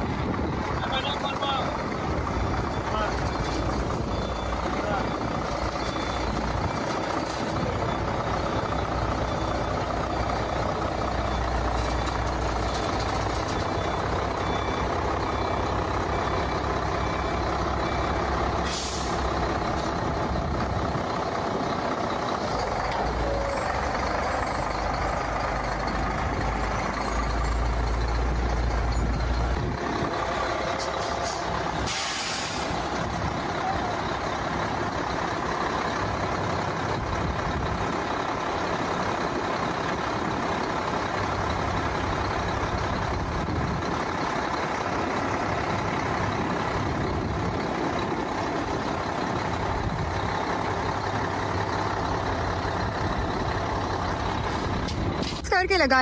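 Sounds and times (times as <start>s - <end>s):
diesel truck engine rumbling: 0.0s - 56.0s
air brake hiss: 18.6s - 19.3s, 31.0s - 32.8s.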